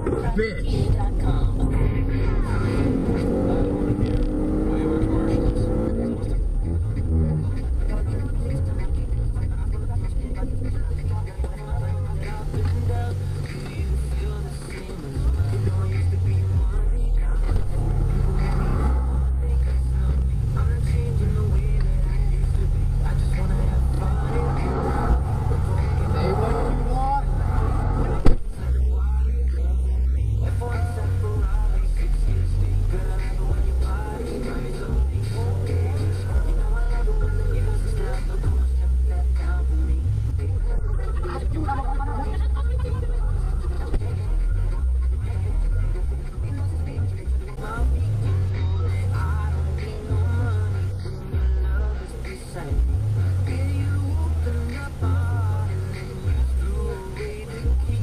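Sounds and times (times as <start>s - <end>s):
car engine and road noise: 0.0s - 58.0s
engine revving: 0.0s - 58.0s.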